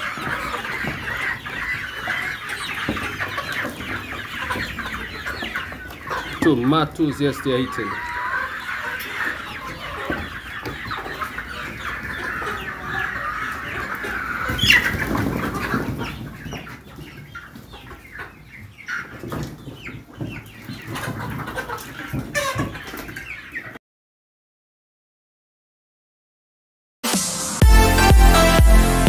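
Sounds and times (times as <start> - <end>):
hens clucking: 0.0 - 23.8.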